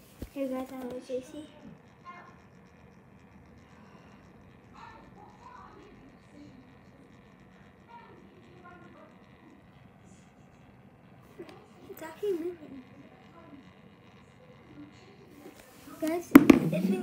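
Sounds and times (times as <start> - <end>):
faint distant voices: 0.3 - 17.0.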